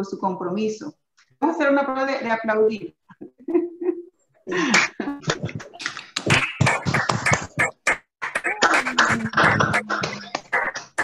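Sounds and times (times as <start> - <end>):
people clapping over a video call: 4.6 - 11.0.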